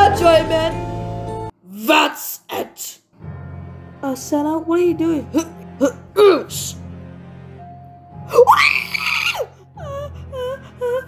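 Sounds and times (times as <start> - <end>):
whimpering cries: 8.3 - 11.0.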